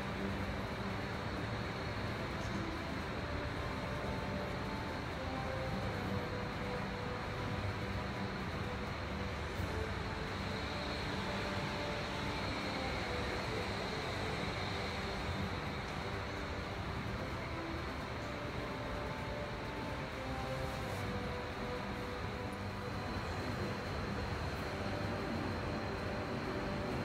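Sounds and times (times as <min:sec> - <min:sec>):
steady rumbling hum: 0:00.0 - 0:27.0.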